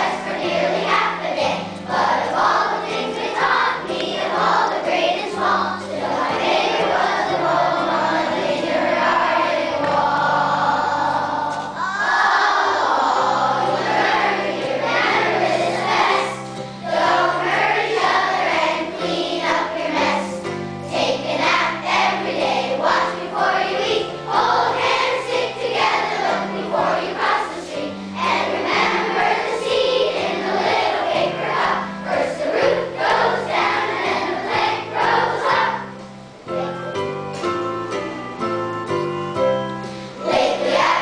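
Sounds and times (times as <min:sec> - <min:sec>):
children's choir singing: 0:00.0 - 0:37.4, 0:38.8 - 0:41.0.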